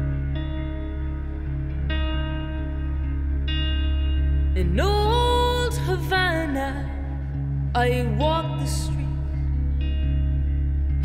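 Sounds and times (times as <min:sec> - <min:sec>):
electric guitar: 0:00.0 - 0:11.0.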